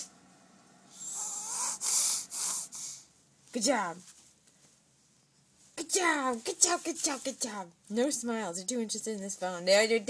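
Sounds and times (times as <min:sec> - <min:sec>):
baby snorting breathily: 0:01.0 - 0:03.1.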